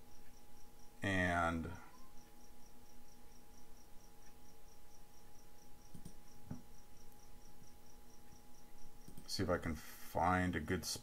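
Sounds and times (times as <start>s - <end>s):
low electrical hum: 0.0s - 11.0s
soft clicks: 5.9s - 7.2s, 9.0s - 9.4s.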